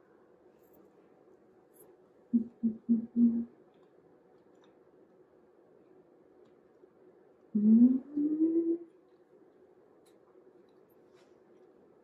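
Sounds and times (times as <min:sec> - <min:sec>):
woman humming: 0:02.4 - 0:03.5, 0:07.6 - 0:08.9.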